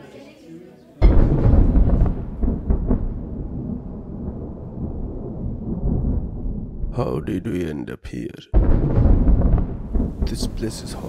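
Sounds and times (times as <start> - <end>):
deep rumble of thunder: 1.0 - 7.3, 8.5 - 11.0
thunder crackles: 1.0 - 7.7, 8.5 - 11.0.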